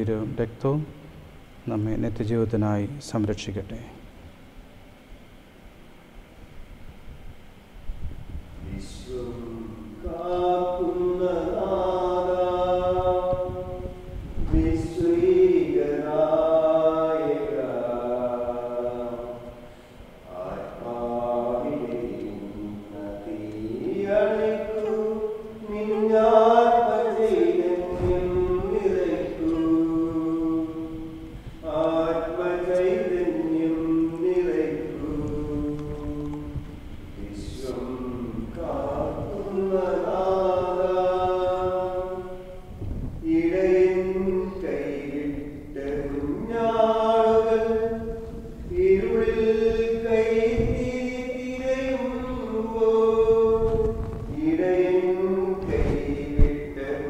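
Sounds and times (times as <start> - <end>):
liturgical chant singing: 0.0 - 3.8, 8.6 - 57.0.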